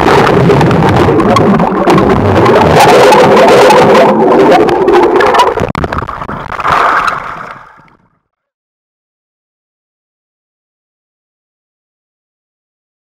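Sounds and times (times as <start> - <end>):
underwater rush of water and bubbles: 0.0 - 8.2.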